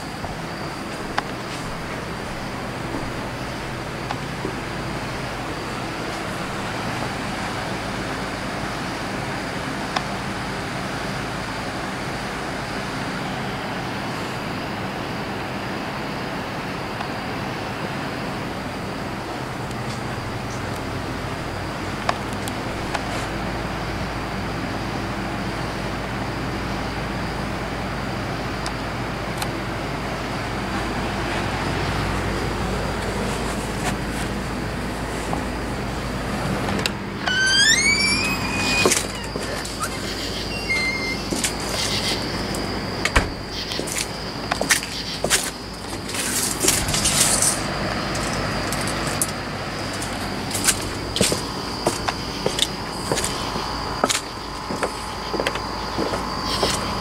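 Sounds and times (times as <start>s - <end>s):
high steady whine: 0.0s - 23.8s, 28.6s - 44.6s, 46.9s - 57.0s
box fan running: 0.0s - 38.0s.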